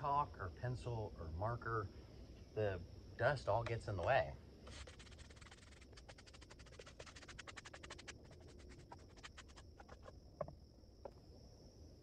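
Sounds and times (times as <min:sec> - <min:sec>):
brush scrubbing wood: 0:04.7 - 0:10.1.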